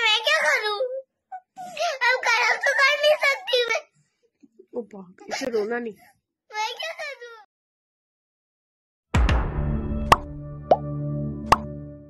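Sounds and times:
short pop sound effects: 9.2 - 10.9, 11.5 - 11.8.

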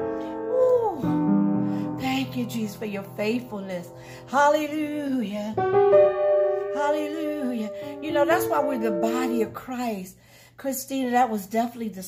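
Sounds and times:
piano chord ringing: 0.0 - 4.2, 5.0 - 9.7
woman's voice: 0.5 - 1.2, 1.9 - 5.6, 6.7 - 12.0.

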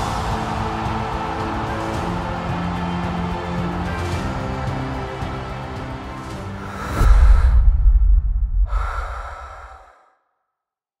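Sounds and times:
short breathy whoosh: 6.7 - 10.2
deep low boom: 6.9 - 9.2.

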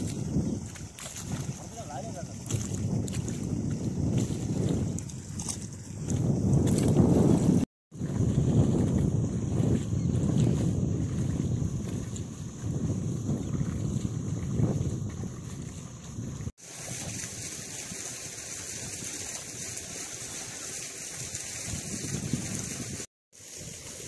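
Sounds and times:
wind rumbling on microphone: 0.0 - 19.6, 20.7 - 24.0
log dragged through mud and water: 0.0 - 24.0
water sloshing: 0.0 - 24.0.

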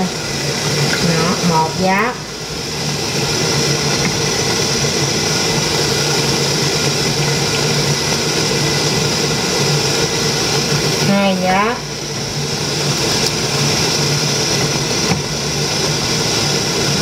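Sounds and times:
fan motor whirring hum: 0.0 - 17.0.

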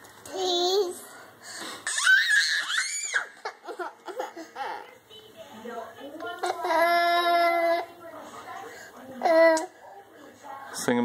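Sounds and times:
toddler crying: 1.8 - 3.5, 6.4 - 7.9.

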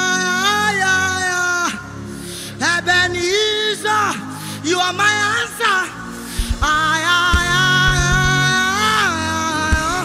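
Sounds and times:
soft musical backing: 0.0 - 10.0.

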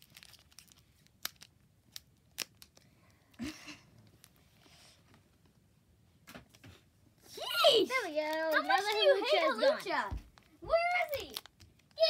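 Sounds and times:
foil wrapper rustling: 0.0 - 1.6
foil wrapper crinkling: 0.0 - 2.8.

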